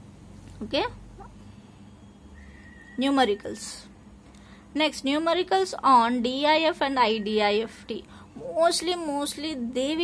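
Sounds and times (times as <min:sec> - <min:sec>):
low background hum: 0:00.0 - 0:10.0
faint high-pitched tone: 0:00.7 - 0:04.0, 0:04.8 - 0:10.0.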